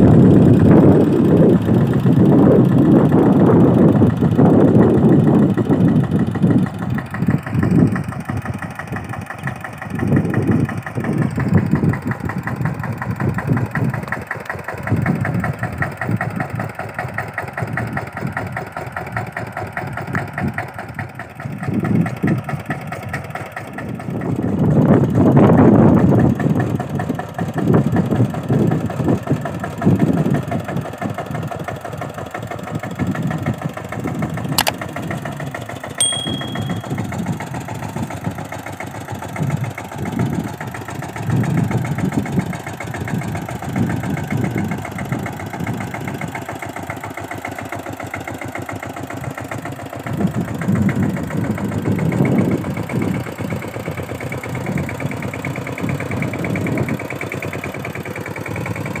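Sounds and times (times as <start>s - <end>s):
diesel tiller engine chugging: 0.0s - 59.0s
sharp click: 34.6s - 34.8s, 36.0s - 37.0s.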